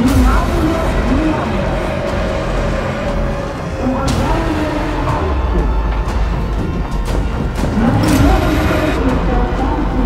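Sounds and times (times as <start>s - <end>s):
held tone of background music: 0.0s - 10.0s.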